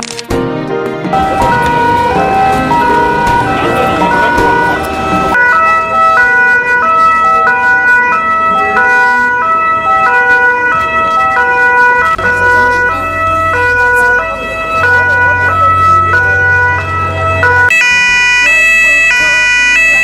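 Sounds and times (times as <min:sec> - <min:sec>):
steady high tone: 0:01.1 - 0:20.0.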